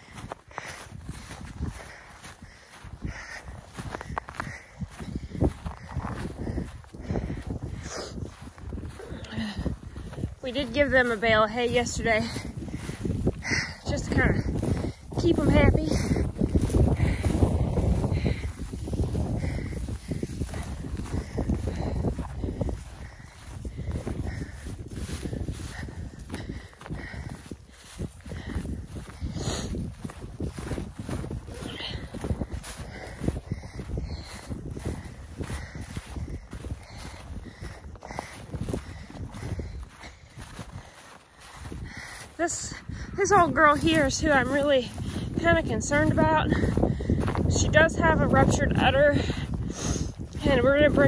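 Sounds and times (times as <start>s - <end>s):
footsteps through crunchy grass: 0.0s - 51.0s
wind rumbling on microphone: 0.0s - 51.0s.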